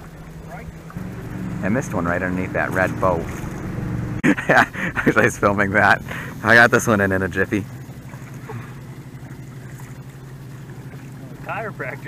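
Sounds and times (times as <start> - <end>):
boat motor humming: 0.0 - 12.0.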